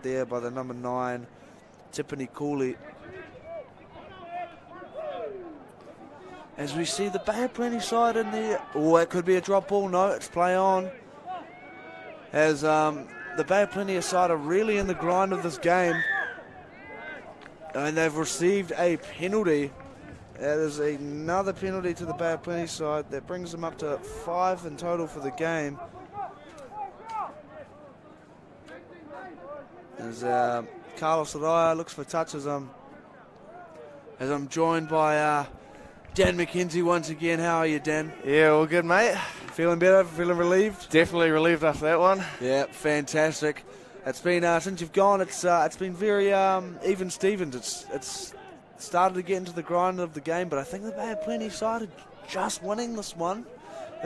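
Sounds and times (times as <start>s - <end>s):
distant shouts and calls: 10.9s - 17.9s.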